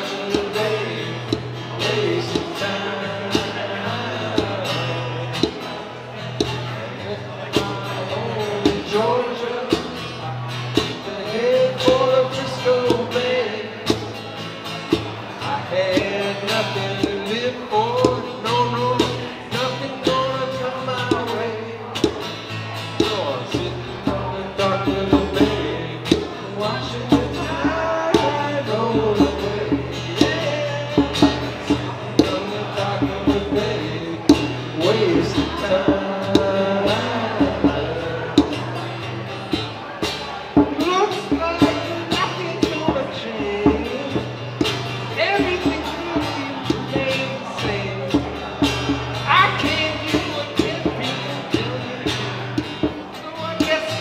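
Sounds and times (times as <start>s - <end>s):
acoustic guitar: 0.0s - 54.0s
person singing: 23.0s - 39.8s.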